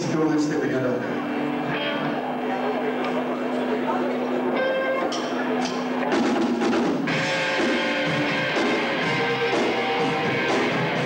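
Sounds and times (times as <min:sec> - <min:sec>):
rock band playing: 0:03.2 - 0:11.0.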